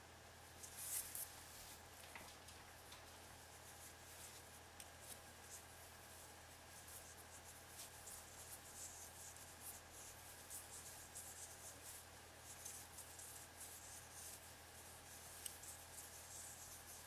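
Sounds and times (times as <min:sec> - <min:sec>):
low steady hum: 0:00.0 - 0:17.0
crochet hook rubbing yarn: 0:03.5 - 0:17.0.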